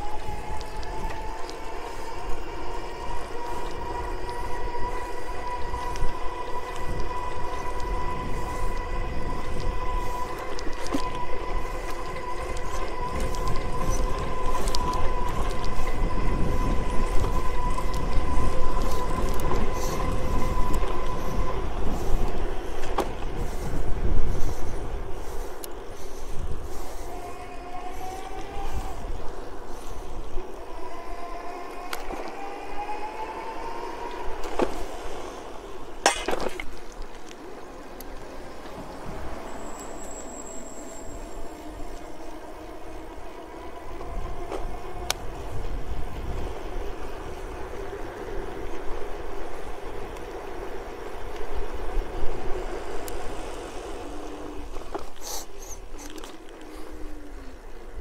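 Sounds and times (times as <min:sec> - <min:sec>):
electric bike motor whining: 0:00.0 - 0:36.0, 0:36.6 - 0:58.0
wind rumble on microphone: 0:00.0 - 0:58.0.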